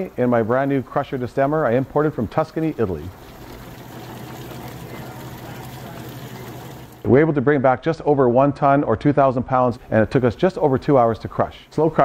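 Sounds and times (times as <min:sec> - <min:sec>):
motor hum: 0:03.0 - 0:07.1.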